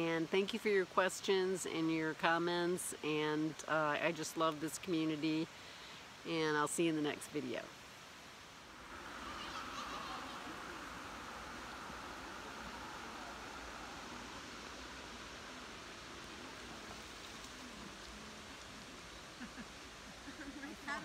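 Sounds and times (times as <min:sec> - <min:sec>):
stream flowing over riffles: 0:00.0 - 0:21.0.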